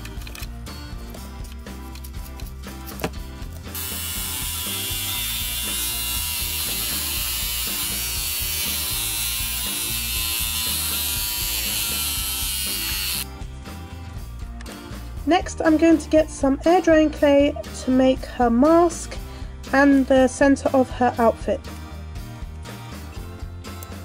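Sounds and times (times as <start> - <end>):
background music: 0.0 - 24.0
electric hair clipper running: 3.7 - 13.3.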